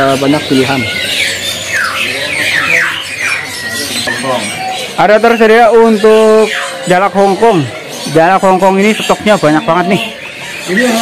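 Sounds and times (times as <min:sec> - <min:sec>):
bird background chatter: 0:00.0 - 0:11.0
songbirds chirping: 0:00.0 - 0:11.0.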